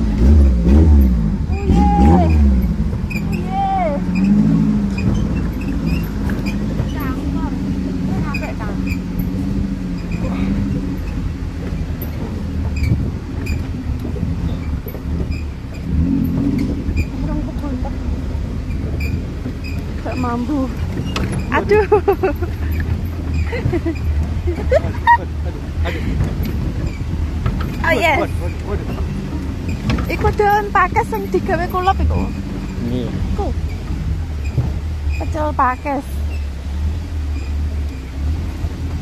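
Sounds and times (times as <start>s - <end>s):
jeep engine running at low revs: 0.0s - 39.0s
people laughing: 21.6s - 26.4s.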